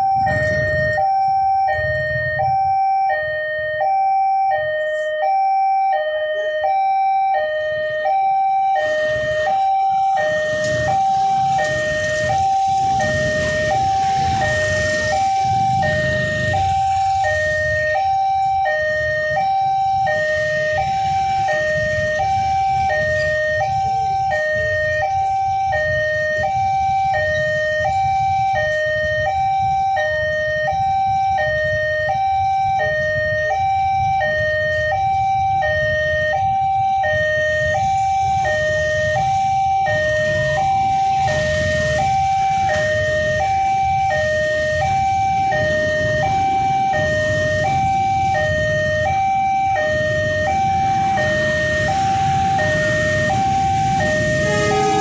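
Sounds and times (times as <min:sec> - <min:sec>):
level crossing two-tone alarm: 0:00.0 - 0:55.0
motorcycle traffic rumble: 0:00.0 - 0:55.0.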